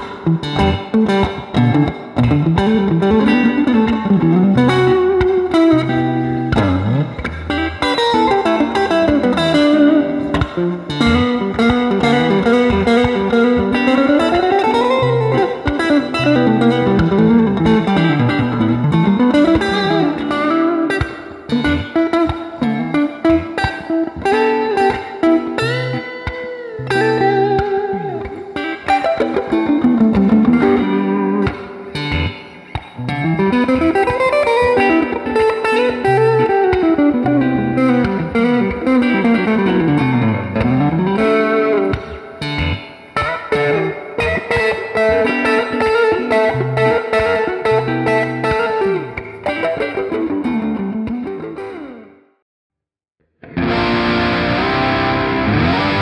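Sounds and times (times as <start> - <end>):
clean electric guitar melody: 0.0 - 52.3, 53.4 - 56.0.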